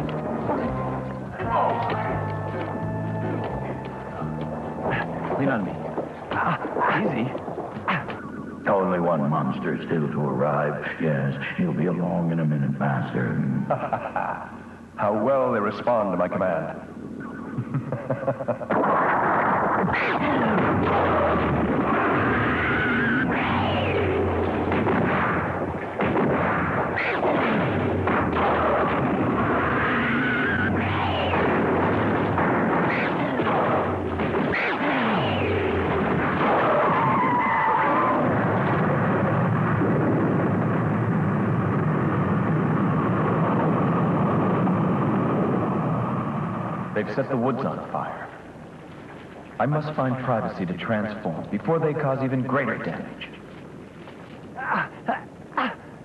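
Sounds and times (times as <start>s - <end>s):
rumble of crashes: 18.7s - 46.8s
steady rushing roar: 20.2s - 47.0s
monster screeching roars: 28.5s - 31.5s, 34.5s - 39.0s.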